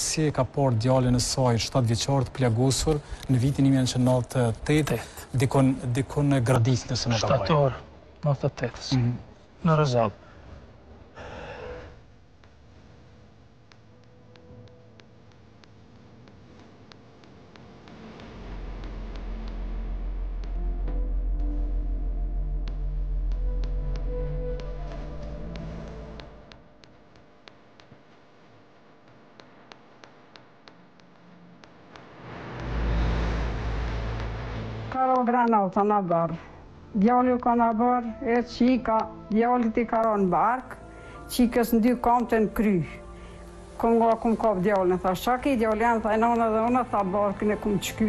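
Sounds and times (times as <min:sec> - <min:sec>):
man speaking: 0:00.0 - 0:10.2
faint low hum and hiss: 0:00.0 - 0:48.0
steady low rumble: 0:17.7 - 0:26.9, 0:30.7 - 0:48.0.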